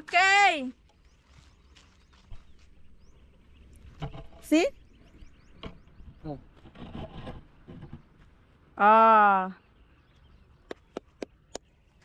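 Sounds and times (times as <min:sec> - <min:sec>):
wind rumbling on microphone: 0:00.8 - 0:08.8.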